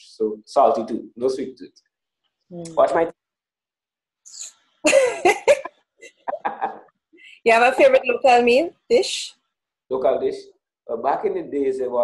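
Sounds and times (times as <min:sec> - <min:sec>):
person speaking: 0:02.5 - 0:03.2, 0:05.1 - 0:08.6.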